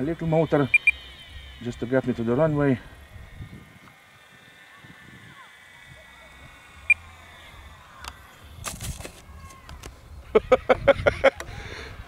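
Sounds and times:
electric motor whine: 0:00.0 - 0:10.6
short sharp beep: 0:00.6 - 0:01.5
plane touching down in grass: 0:07.3 - 0:10.0.

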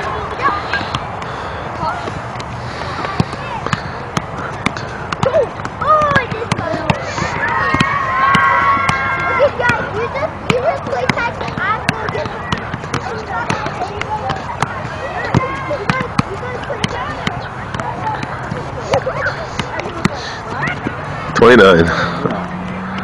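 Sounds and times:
soccer ball light taps: 0:02.0 - 0:21.6.

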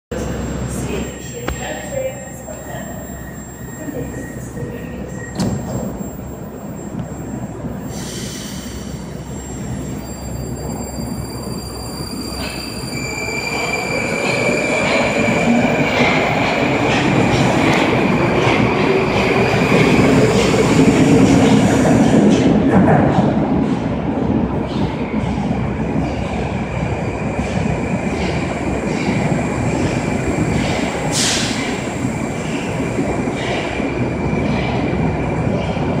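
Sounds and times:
steel wheels rumbling on rail: 0:00.1 - 0:36.0.

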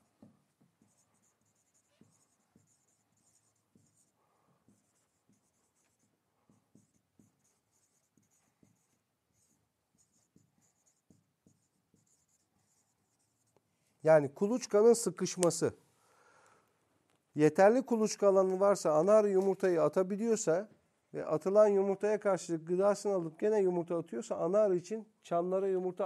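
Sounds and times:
pen scratching on board: 0:00.0 - 0:13.6.

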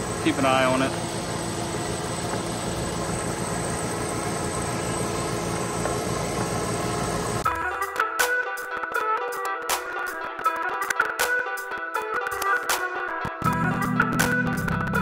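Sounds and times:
loud compressor machine running: 0:00.0 - 0:07.5
music: 0:07.4 - 0:15.0.

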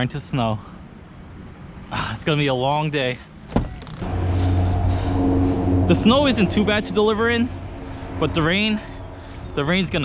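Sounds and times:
vehicle engine running: 0:04.0 - 0:10.0.

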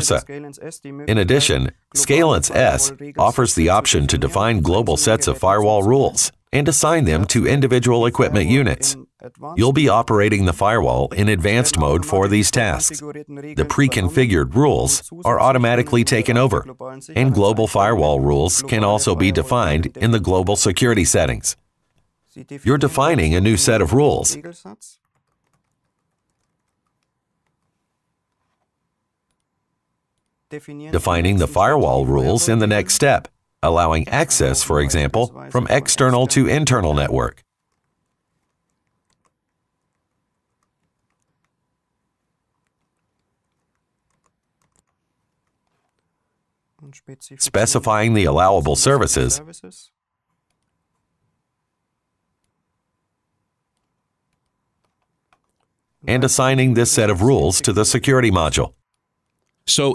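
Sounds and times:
faint keyboard typing clicks: 0:25.0 - 0:29.5, 0:37.5 - 0:41.6, 0:42.6 - 0:46.1.

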